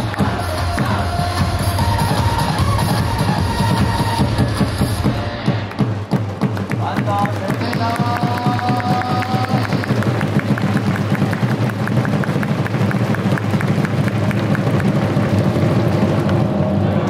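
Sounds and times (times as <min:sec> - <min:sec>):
cheer song melody: 0:00.0 - 0:05.8
cheer drums beating: 0:00.0 - 0:16.8
stadium crowd cheering: 0:00.0 - 0:17.0.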